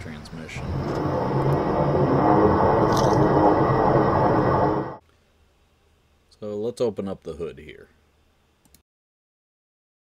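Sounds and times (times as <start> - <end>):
electric lawn tractor whirring: 0.6 - 5.0.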